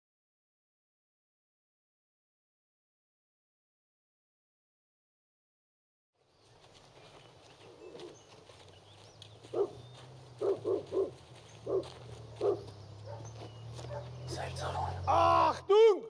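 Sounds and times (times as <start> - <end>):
distant dog barks: 7.6 - 8.2, 9.4 - 15.0.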